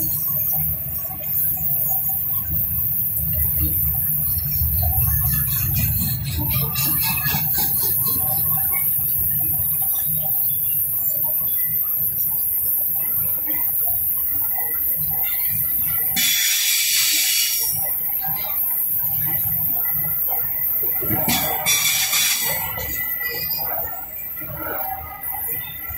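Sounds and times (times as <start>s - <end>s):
train wheels rumbling on rails: 3.3s - 10.0s, 19.2s - 23.9s.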